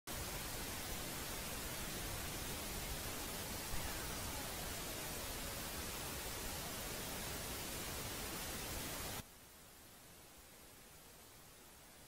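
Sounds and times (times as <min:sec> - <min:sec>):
steady hiss: 0:00.1 - 0:12.0.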